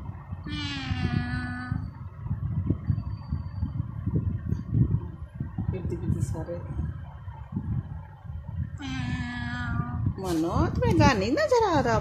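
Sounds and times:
cat meowing: 0:00.4 - 0:01.8, 0:08.8 - 0:10.0.

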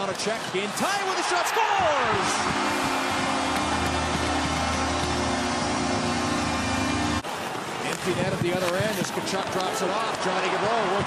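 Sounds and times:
crowd cheering: 0:00.6 - 0:07.9, 0:09.2 - 0:11.0
goal horn blast: 0:01.8 - 0:07.2.

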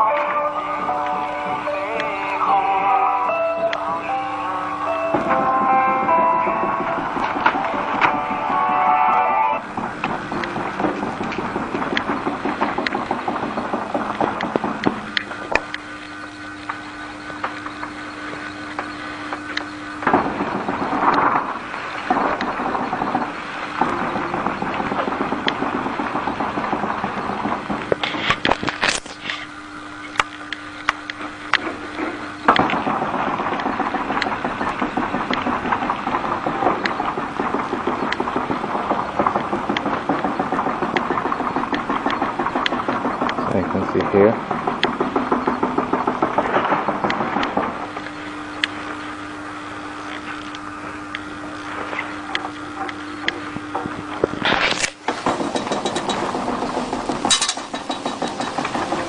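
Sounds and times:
low steady hum: 0:00.0 - 0:59.0
laminating machine rollers clicking: 0:03.6 - 0:59.0.

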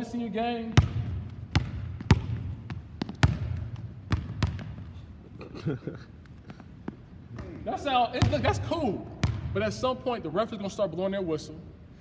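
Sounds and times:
basketball bouncing on wooden floor: 0:00.8 - 0:04.9, 0:09.2 - 0:09.6.

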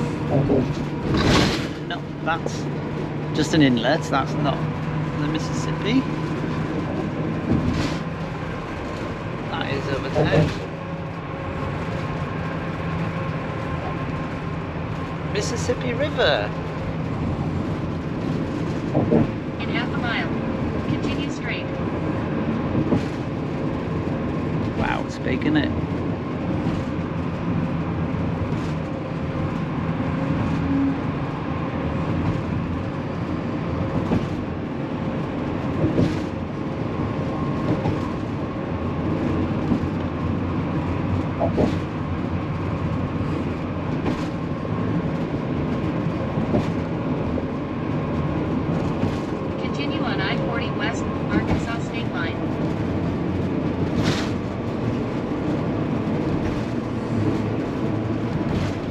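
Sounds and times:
road and engine noise: 0:00.0 - 0:58.9.

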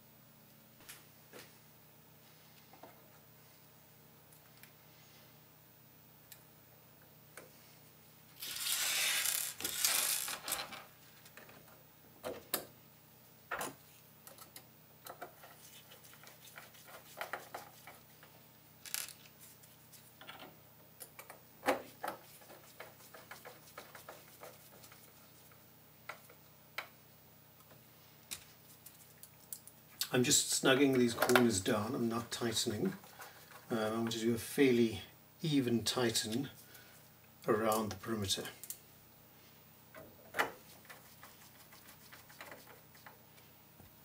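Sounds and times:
small metal parts clicking: 0:18.8 - 0:19.3.

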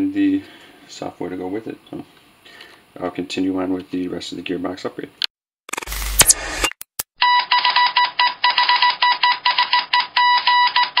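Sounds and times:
fast electronic beeps: 0:05.7 - 0:06.9.

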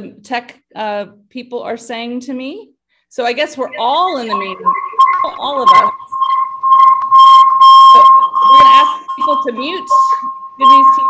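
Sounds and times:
audio feedback whine: 0:03.4 - 0:11.0
harsh feedback bursts: 0:03.5 - 0:11.0.

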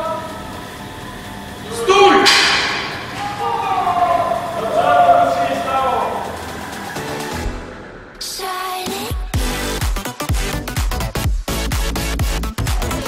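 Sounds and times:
distant voices echoing in a hall: 0:00.0 - 0:08.8.

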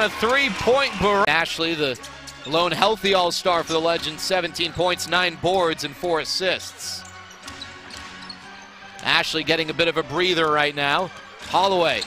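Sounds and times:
arena music with held notes: 0:00.0 - 0:12.0.

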